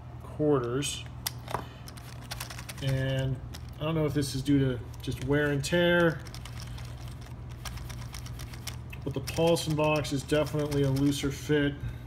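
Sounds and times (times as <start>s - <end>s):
steady low hum: 0.0s - 12.0s
poker chips clicking: 0.6s - 3.8s, 4.9s - 11.2s.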